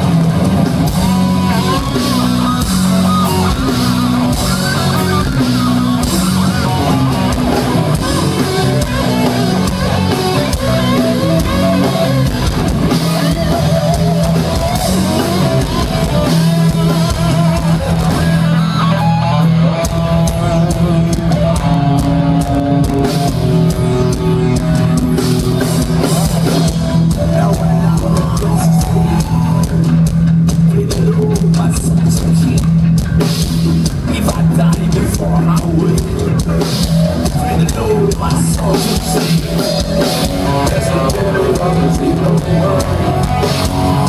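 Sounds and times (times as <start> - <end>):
bass guitar: 0.0 - 44.0
drum kit: 0.0 - 44.0
electric guitar: 0.0 - 44.0.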